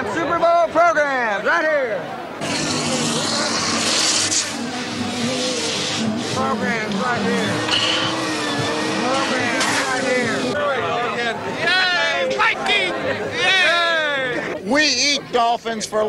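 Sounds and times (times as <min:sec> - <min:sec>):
crowd chatter: 0:00.0 - 0:16.0
rubber balloons squeaking: 0:07.2 - 0:10.3.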